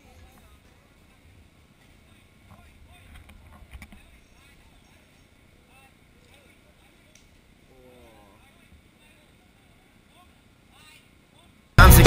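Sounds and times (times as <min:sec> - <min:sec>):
faint distant voices: 0:00.0 - 0:11.9.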